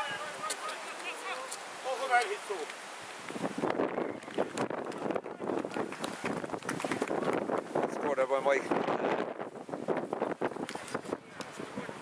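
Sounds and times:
wind buffeting microphone: 0:02.4 - 0:12.0.

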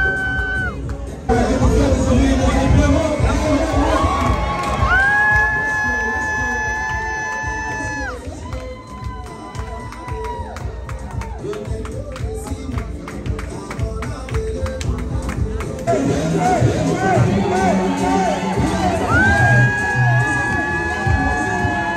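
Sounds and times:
crowd cheering and shouting: 0:00.0 - 0:11.9, 0:15.9 - 0:21.9
loud party music: 0:00.0 - 0:21.9.

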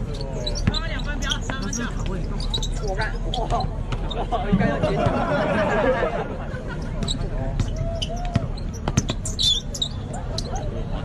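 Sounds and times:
spectators' voices: 0:00.0 - 0:11.0
basketball bouncing on concrete: 0:00.1 - 0:02.2, 0:07.0 - 0:09.2.

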